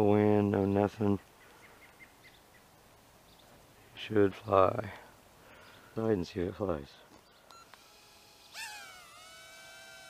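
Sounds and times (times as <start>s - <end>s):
quadcopter motors whining: 7.5s - 10.0s.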